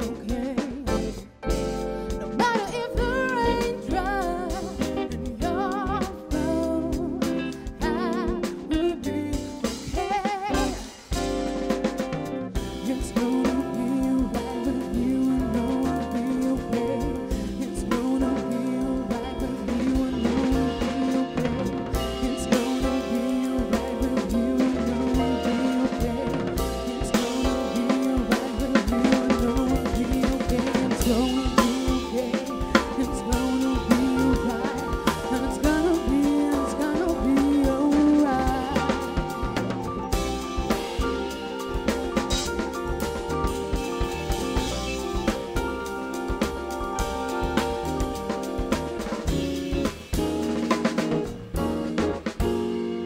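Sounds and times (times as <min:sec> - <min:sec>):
drum kit: 0:00.0 - 0:53.0
electric piano chords: 0:00.0 - 0:53.0
jazz band playing: 0:00.0 - 0:53.0
upright bass: 0:00.0 - 0:53.0.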